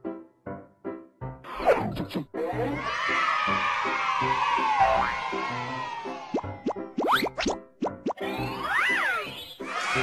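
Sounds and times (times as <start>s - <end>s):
rising cartoon bloop effects: 6.3s - 9.2s.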